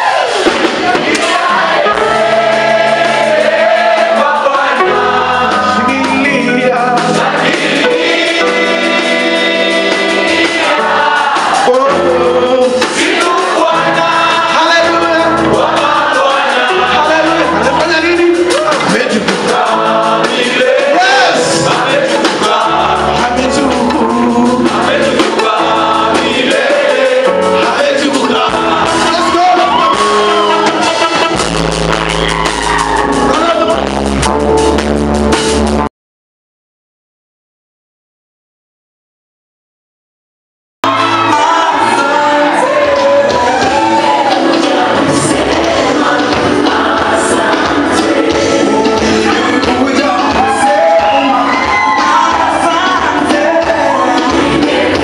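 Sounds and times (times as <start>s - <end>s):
choir singing gospel: 0.0s - 33.9s, 40.8s - 55.0s
drum kit playing: 0.0s - 35.9s, 40.8s - 55.0s
low musical accompaniment: 1.3s - 35.8s.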